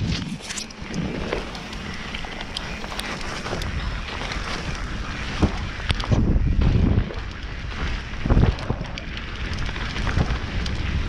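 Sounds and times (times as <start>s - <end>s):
bike clicks and rattles: 0.0s - 11.0s
bike tyres rolling on dirt: 0.0s - 11.0s
low rumble: 0.0s - 11.0s
wind buffeting microphone: 0.0s - 11.0s.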